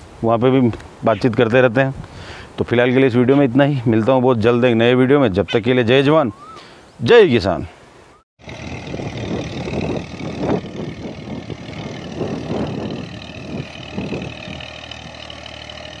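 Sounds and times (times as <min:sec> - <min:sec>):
tractor engine under load: 0:08.4 - 0:16.0.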